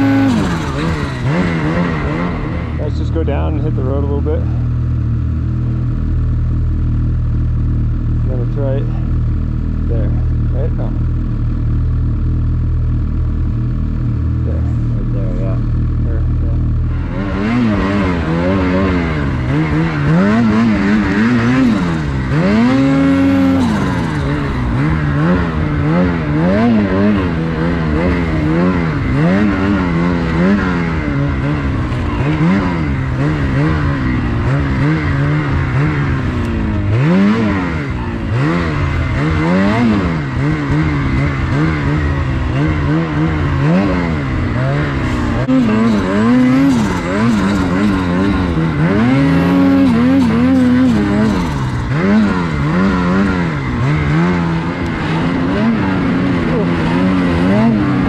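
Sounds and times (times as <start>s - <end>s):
snowmobile engine revving: 0.0s - 58.0s.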